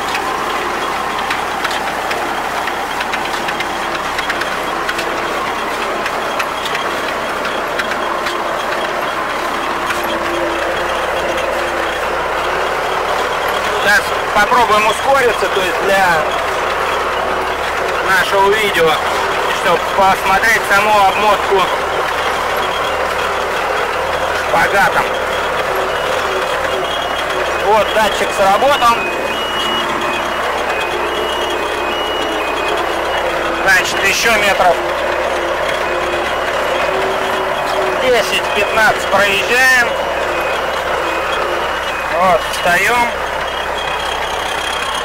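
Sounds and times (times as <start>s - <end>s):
round baler working: 0.0s - 45.0s
tractor engine running: 0.0s - 45.0s.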